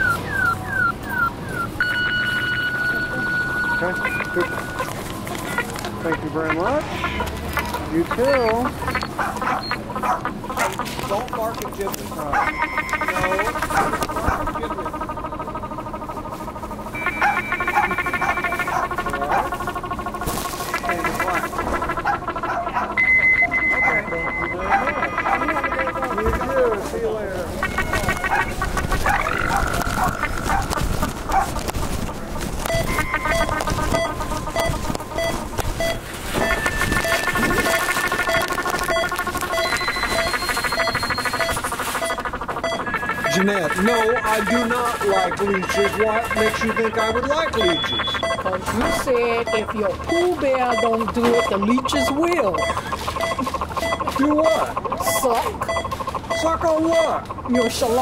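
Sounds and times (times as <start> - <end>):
short repeating beep: 0.0 - 5.0, 7.6 - 9.8, 12.4 - 13.5, 17.0 - 18.8, 23.0 - 25.7, 27.6 - 28.5, 32.7 - 57.9
gliding synthesizer pitches: 0.0 - 58.0
steady synthesizer tones: 0.0 - 58.0
fragments of voices: 3.0 - 58.0.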